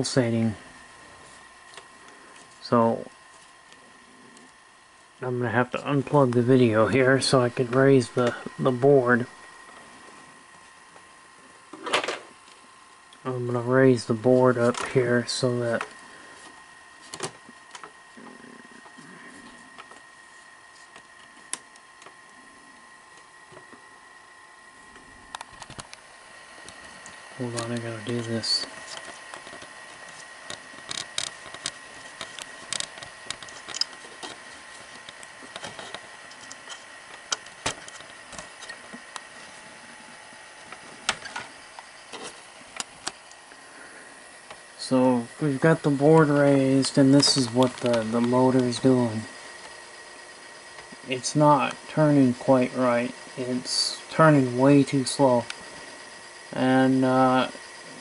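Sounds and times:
faint high whine: 0:00.0 - 0:58.0.

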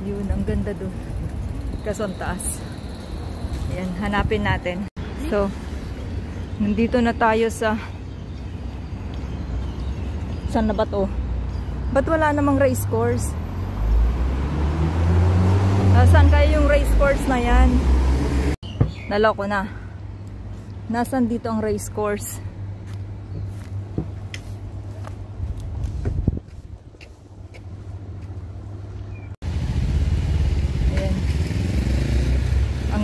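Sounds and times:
vehicle engine rumble passing: 0:12.8 - 0:18.6, 0:29.4 - 0:33.0.

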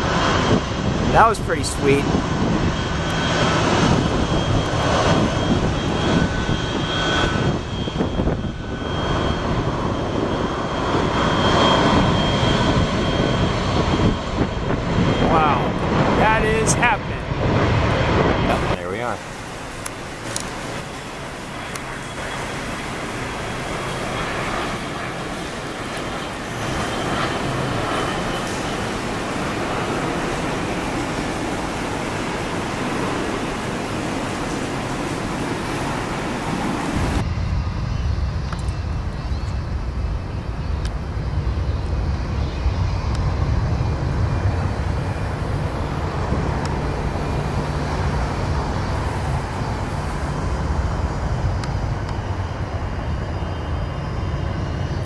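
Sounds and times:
deep low jet rumble: 0:00.0 - 0:55.0
jet roar with high engine whine: 0:00.0 - 0:55.0.

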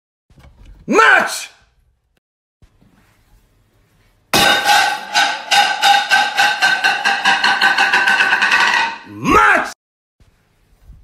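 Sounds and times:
plate rattling on tiled floor: 0:04.4 - 0:09.2.

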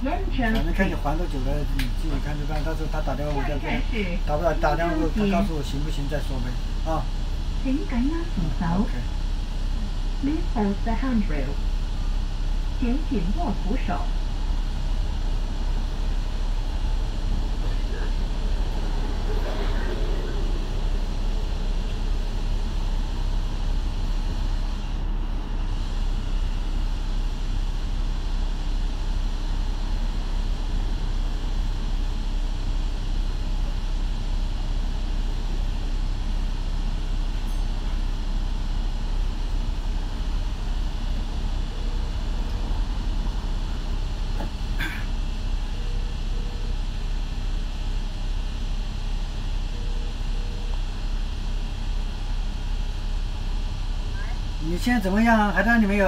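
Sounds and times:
bus diesel engine idling: 0:00.0 - 0:56.0.

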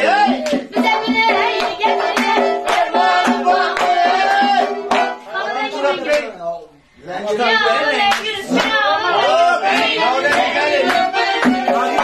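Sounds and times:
hand claps: 0:00.3 - 0:05.2, 0:06.1 - 0:06.3, 0:08.1 - 0:08.8, 0:09.7 - 0:12.0.

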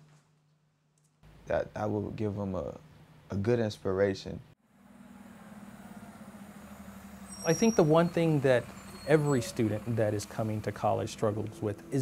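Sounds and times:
bus engine idling: 0:04.8 - 0:12.0.

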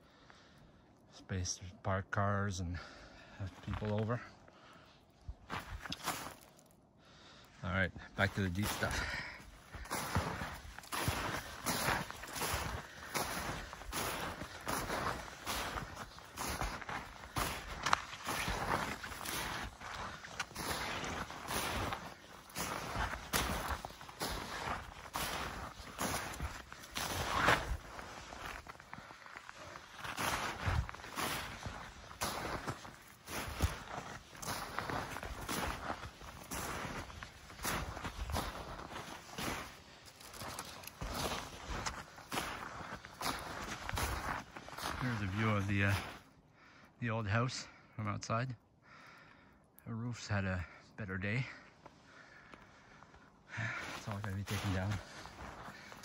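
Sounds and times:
footsteps crunching through snow: 0:02.9 - 0:06.8, 0:07.5 - 0:46.4, 0:53.6 - 0:56.0.

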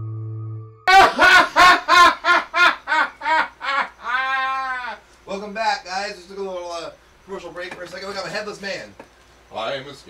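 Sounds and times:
person laughing: 0:00.9 - 0:05.0.

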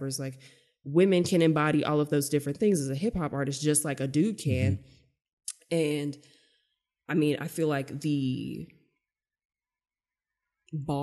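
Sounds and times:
woman saying a word: 0:04.5 - 0:04.8.

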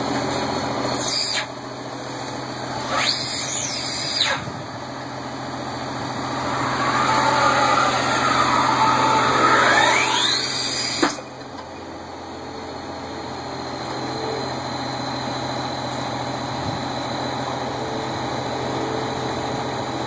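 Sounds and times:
farm machine engine running: 0:00.0 - 0:20.0
thin high whine: 0:00.0 - 0:20.0.

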